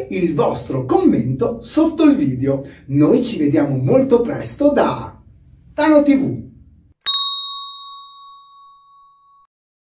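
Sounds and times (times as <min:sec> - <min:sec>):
ding ringing: 0:07.0 - 0:09.5.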